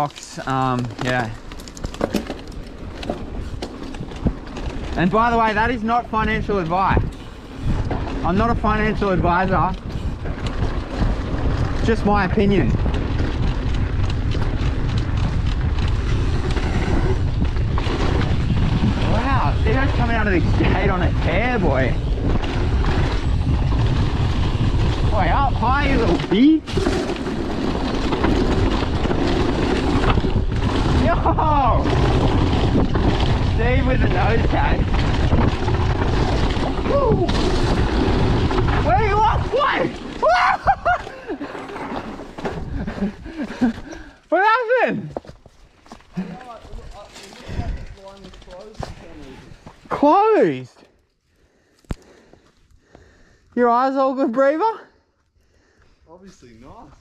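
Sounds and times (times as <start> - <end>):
bike rattling and knocking: 0.0 - 44.2, 45.1 - 50.4
bike tyre rumble on dirt: 0.0 - 54.2
wind over microphone: 2.2 - 41.4, 42.4 - 44.2, 46.2 - 49.9.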